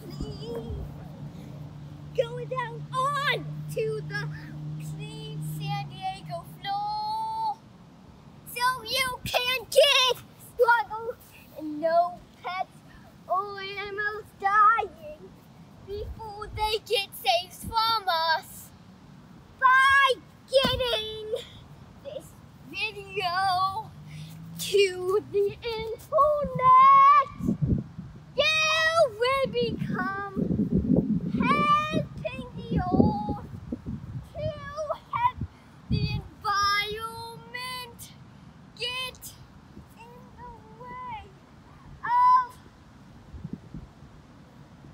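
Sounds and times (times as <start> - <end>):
young child singing wordlessly: 0.0 - 7.8, 8.4 - 18.9, 19.5 - 42.8
low thump: 20.6 - 20.8.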